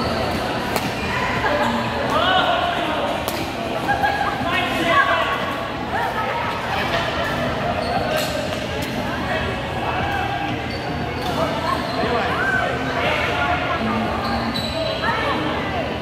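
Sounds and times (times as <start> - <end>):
rackets hitting shuttlecock: 0.7 - 1.0, 3.2 - 3.6.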